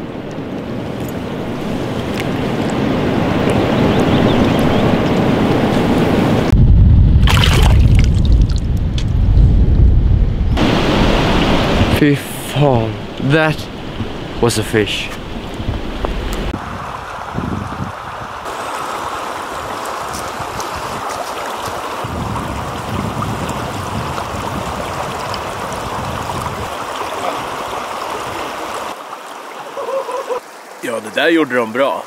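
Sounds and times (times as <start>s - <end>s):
river water rushing over rocks: 10.6s - 11.9s, 18.4s - 22.1s, 23.5s - 30.9s.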